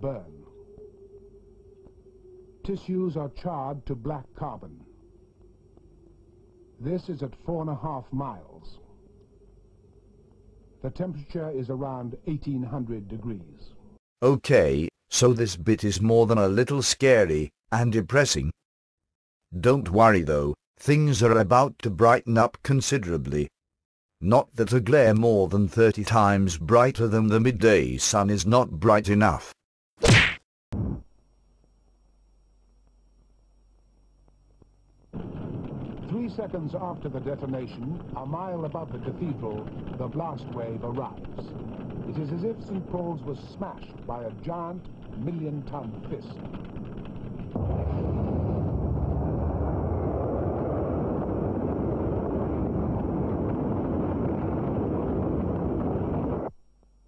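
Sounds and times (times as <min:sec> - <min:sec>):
faint hum: 0:00.0 - 0:18.6, 0:30.8 - 0:57.0
cartoon punch whack: 0:30.0 - 0:31.0.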